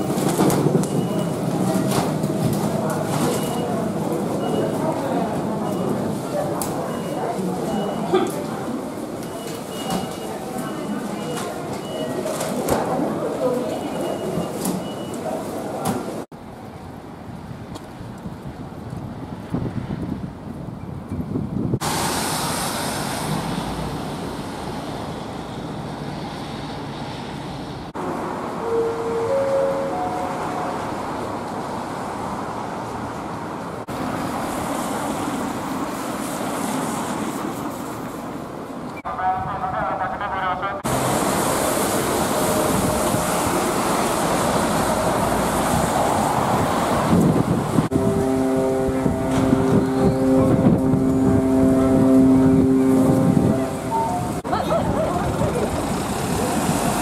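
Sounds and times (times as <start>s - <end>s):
traffic passing on wet roads: 0.0s - 20.6s, 21.6s - 57.0s
steady pitched hum: 47.9s - 54.4s.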